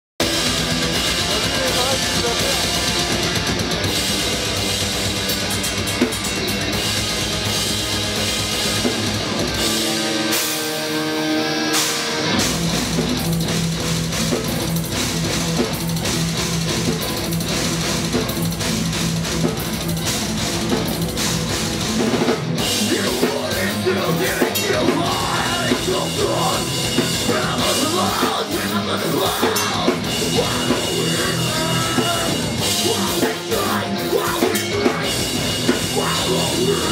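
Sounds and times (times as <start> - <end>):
metal band playing live: 0.2 - 36.9.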